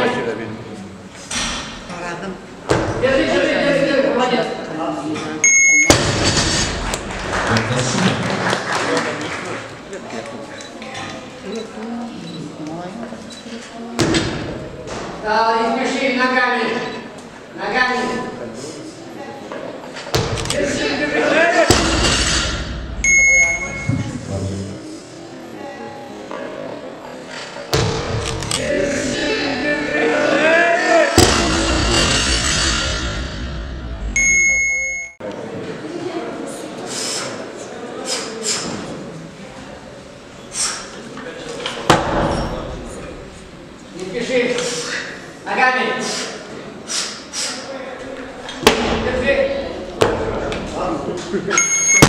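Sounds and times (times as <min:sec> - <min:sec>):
voices in a hall: 0:00.0 - 0:52.0
electronic beep tones: 0:05.4 - 0:06.0, 0:23.0 - 0:24.1, 0:34.2 - 0:35.2, 0:51.6 - 0:52.0.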